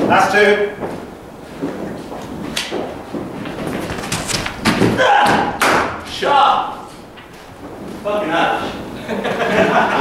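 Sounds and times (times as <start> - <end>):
running thuds on matting: 0.8 - 6.1
cricket bat hitting ball: 4.0 - 6.1
sharp knock: 4.1 - 6.0.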